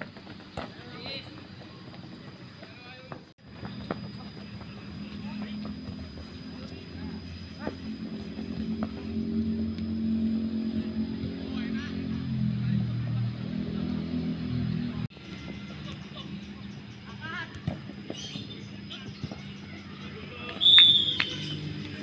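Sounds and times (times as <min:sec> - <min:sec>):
vehicle engine running: 0:03.4 - 0:22.0.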